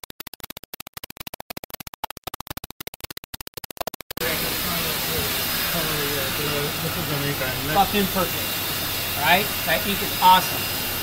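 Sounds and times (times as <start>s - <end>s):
chopped electronic music: 0.0s - 4.3s
voices: 4.2s - 10.8s
printing press running: 4.2s - 11.0s.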